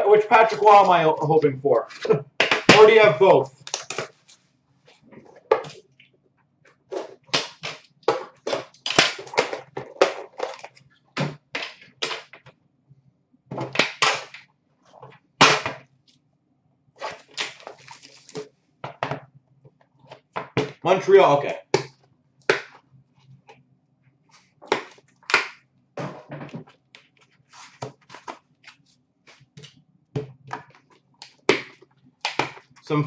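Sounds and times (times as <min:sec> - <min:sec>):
cellophane crinkling: 0:17.1 - 0:18.4.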